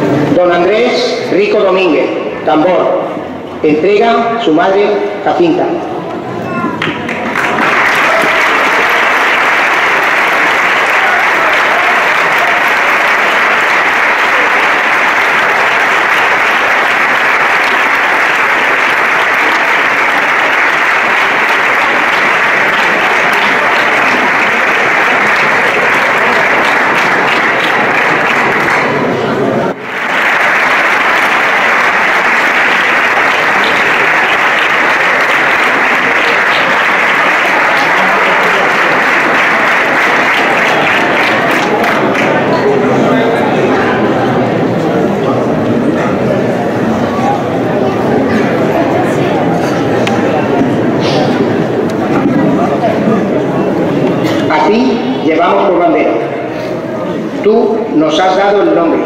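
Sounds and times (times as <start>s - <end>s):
audience applauding: 6.8s - 45.3s.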